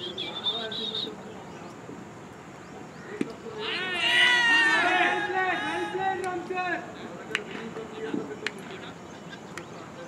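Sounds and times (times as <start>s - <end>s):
fielders shouting: 3.5s - 7.0s.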